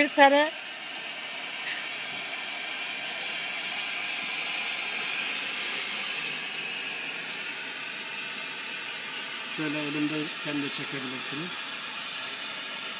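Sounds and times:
torch hissing: 0.0 - 12.9.

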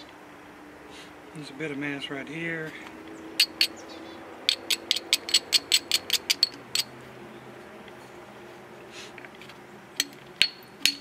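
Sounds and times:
tool clicking on stone: 3.4 - 3.8, 4.5 - 6.9.

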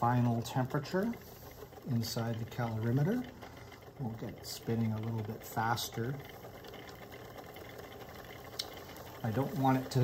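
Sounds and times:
magnetic stirrer whirring: 0.0 - 10.0.

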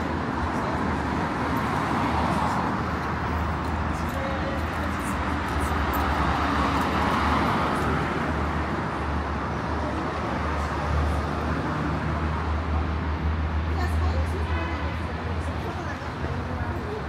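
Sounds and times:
city road traffic hum: 0.0 - 17.0.

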